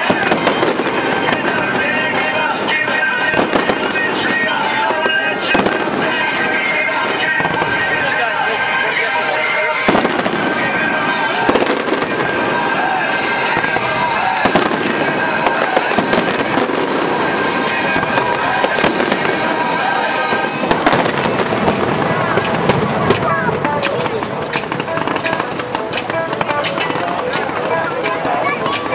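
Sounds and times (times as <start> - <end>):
fireworks bangs: 0.0 - 28.9.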